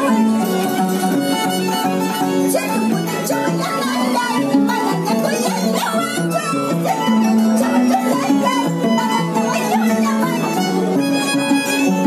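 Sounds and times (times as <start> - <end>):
violin melody: 0.0 - 12.0.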